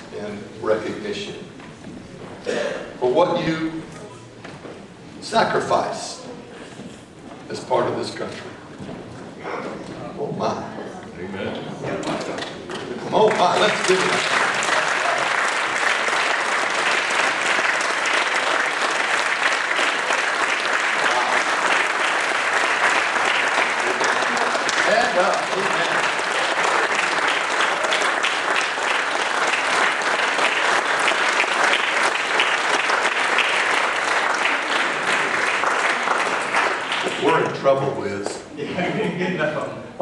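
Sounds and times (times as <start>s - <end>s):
congregation applauding: 12.4s - 37.9s.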